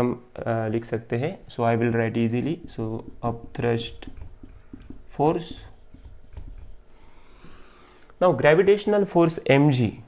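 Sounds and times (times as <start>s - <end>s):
marker pen on whiteboard: 1.0s - 8.9s.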